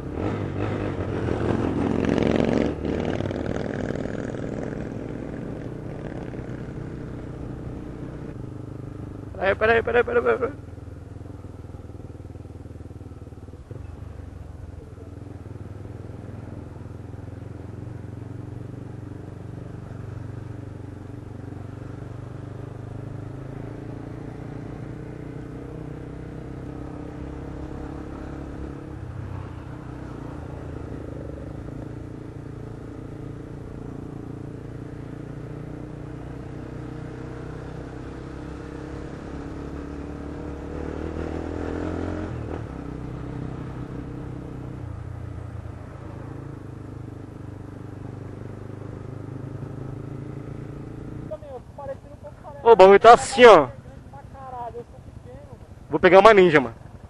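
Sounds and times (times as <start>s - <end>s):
motorcycle engine running: 0.0s - 57.0s.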